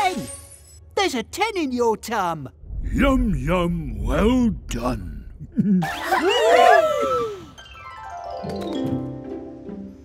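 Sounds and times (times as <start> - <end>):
cartoon whoops: 6.0 - 7.6
music: 7.6 - 10.0.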